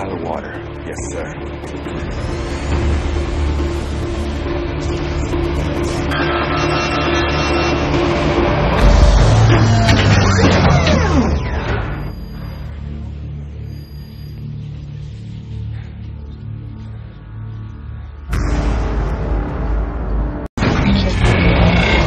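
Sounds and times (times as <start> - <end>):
tense film score: 0.0 - 22.0
deep boom: 8.2 - 12.4, 18.2 - 22.0.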